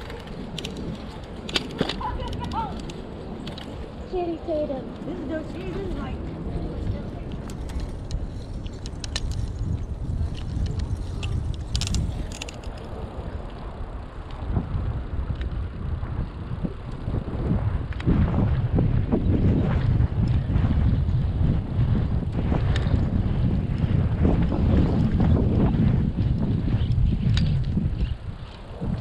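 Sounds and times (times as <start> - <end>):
bicycle clicks and rattles: 0.0 - 29.0
wind buffeting microphone: 0.0 - 29.0.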